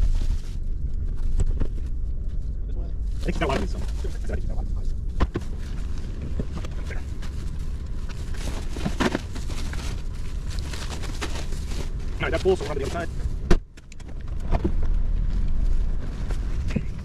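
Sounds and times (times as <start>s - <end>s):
steady low rumble: 0.0s - 17.0s
grocery bags rustling: 5.5s - 13.5s.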